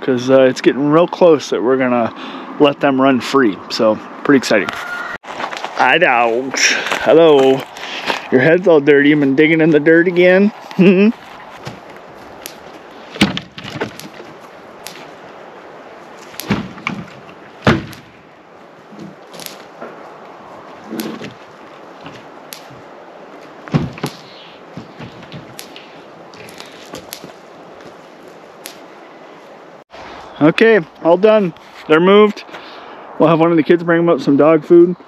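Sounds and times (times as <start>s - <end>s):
hollow wooden knocks and thuds: 13.2s - 14.3s, 16.4s - 18.0s, 23.7s - 25.6s.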